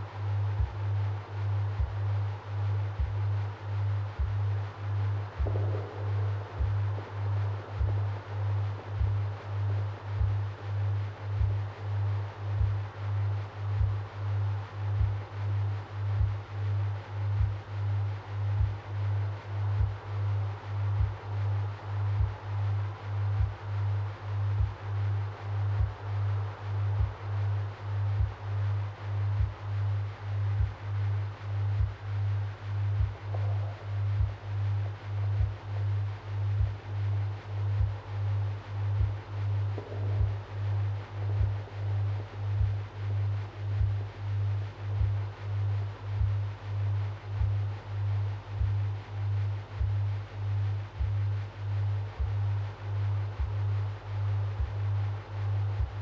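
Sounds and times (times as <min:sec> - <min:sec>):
low binaural drone: 0:00.0 - 0:56.0
soft low percussion ticking: 0:00.0 - 0:56.0.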